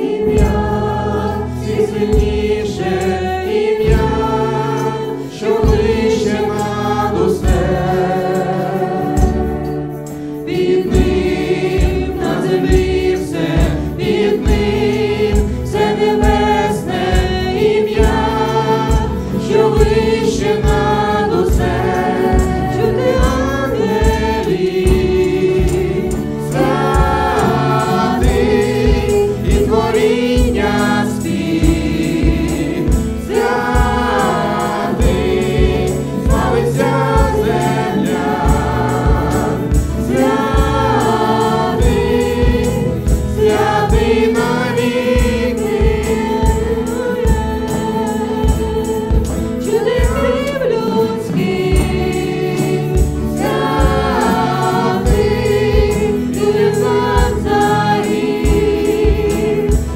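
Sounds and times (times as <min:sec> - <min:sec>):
acoustic guitar: 0:00.0 - 0:59.9
drums keeping a steady beat: 0:00.0 - 0:59.9
people singing into microphones: 0:00.0 - 0:59.9.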